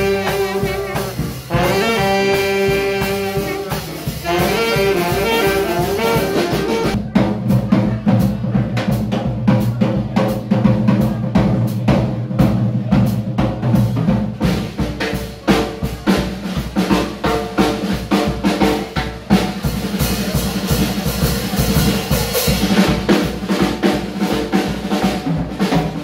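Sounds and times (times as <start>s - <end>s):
saxophones and brass chords: 0.0s - 7.0s
double bass: 0.0s - 26.0s
drum kit: 0.0s - 26.0s.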